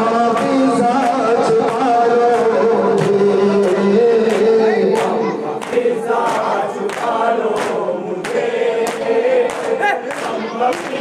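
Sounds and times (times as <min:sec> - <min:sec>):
men chanting a lament: 0:00.0 - 0:11.0.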